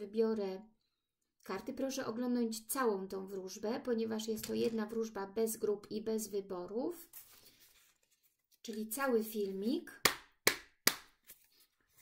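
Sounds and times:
knuckles rapping on cards: 10.0s - 11.2s.

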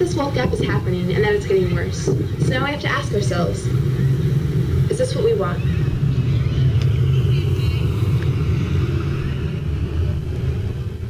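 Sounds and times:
low rumble from speakers: 0.0s - 11.0s.

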